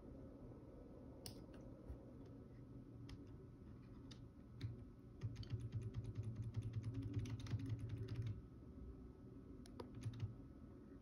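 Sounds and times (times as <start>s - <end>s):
rapid faint computer clicking: 3.0s - 8.4s, 9.6s - 10.4s.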